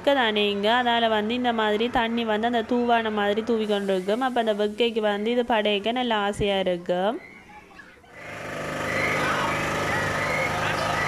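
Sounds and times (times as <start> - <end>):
amusement ride mechanical hum: 0.0 - 11.0
faint voices: 6.9 - 11.0.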